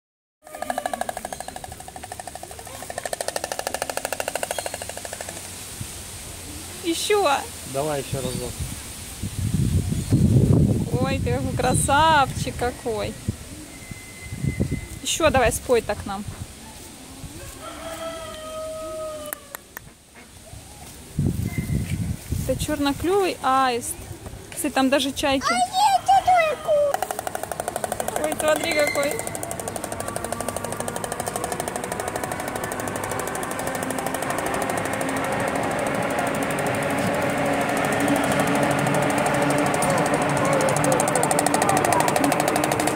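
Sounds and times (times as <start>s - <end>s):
stork clattering its bill: 0.5s - 5.6s, 26.8s - 42.9s.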